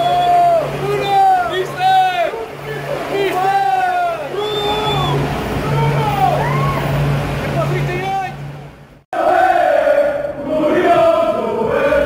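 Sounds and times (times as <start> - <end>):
people chattering: 0.0 - 8.0
bus engine idling: 0.0 - 9.0.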